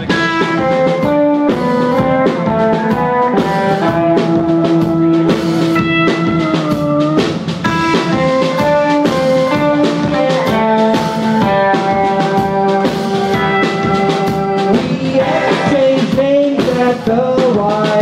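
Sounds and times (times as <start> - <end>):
drum kit: 0.0 - 18.0
electric guitars playing chords: 0.0 - 18.0.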